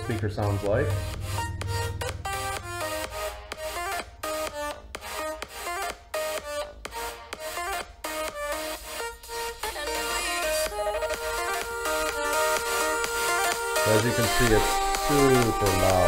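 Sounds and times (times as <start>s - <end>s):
electronic dance music from phone speaker: 0.0s - 16.0s.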